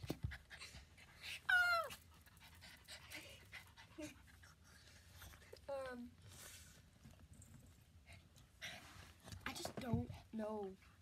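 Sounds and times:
small dog panting: 0.0 - 5.9.

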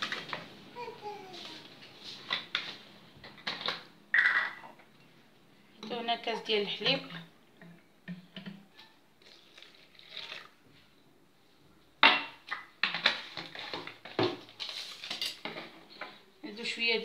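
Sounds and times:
milk pouring into bowl: 9.2 - 10.7.

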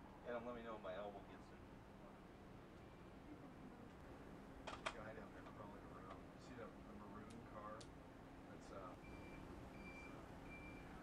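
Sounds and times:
vehicle backup alarm beeping: 9.0 - 11.0.

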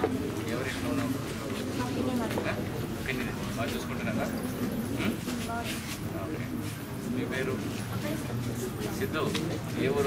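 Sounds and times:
people talking in a room: 0.0 - 10.0.

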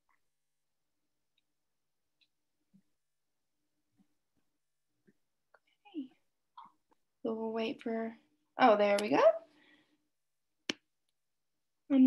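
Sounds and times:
woman speaking: 7.3 - 9.5.

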